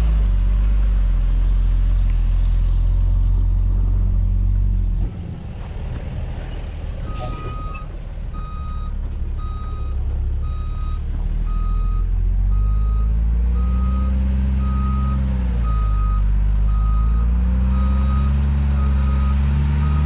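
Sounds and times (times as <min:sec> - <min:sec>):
diesel engine revving: 0:00.0 - 0:20.0
reversing alarm beeps: 0:07.1 - 0:20.0.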